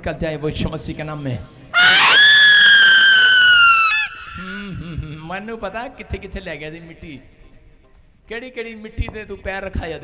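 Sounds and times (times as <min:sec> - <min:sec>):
woman screaming into microphone: 0:01.8 - 0:04.9
woman's lower cry: 0:01.8 - 0:05.1.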